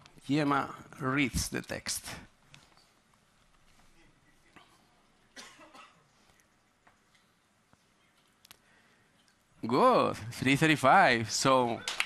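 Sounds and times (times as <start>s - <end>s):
person coughing: 5.3s - 6.2s.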